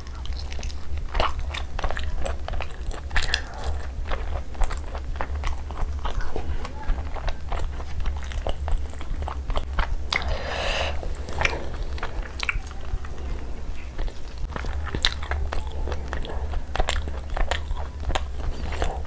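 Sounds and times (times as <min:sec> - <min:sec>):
close chewing and biting: 0:00.0 - 0:19.0
steady low hum: 0:00.0 - 0:19.0.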